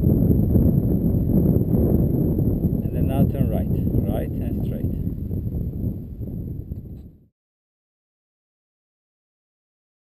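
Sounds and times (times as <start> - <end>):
wind buffeting microphone: 0.0 - 7.3.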